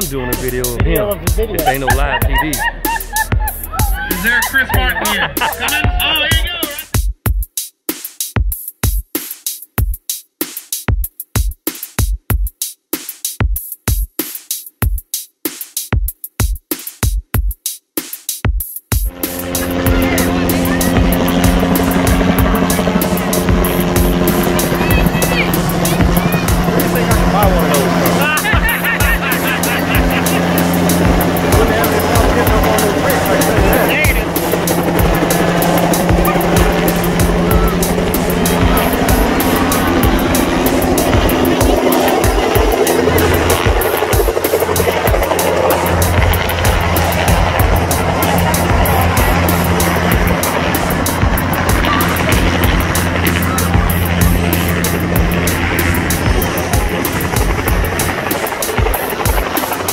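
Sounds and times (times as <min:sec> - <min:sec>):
helicopter flying low overhead: 0:00.0 - 0:07.0, 0:19.0 - 0:59.9
music with low notes: 0:00.0 - 0:07.0, 0:18.9 - 0:59.5.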